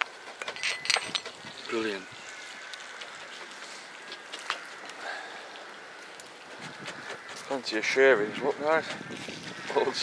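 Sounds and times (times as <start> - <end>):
outdoor background hiss: 0.0 - 10.0.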